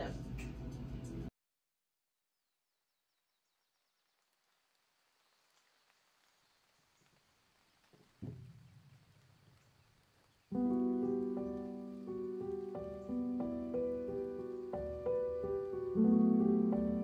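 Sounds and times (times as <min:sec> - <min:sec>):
faint room hiss: 0:03.9 - 0:17.0
soft thump: 0:08.2 - 0:08.6.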